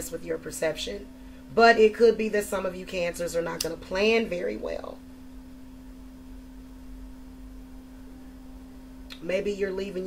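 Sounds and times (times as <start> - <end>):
steady low hum: 0.0 - 10.0
faint low rumble: 0.1 - 10.0.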